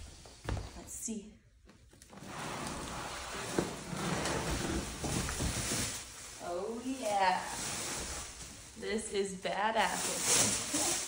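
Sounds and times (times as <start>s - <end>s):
plastic bag crinkling: 3.4s - 11.0s.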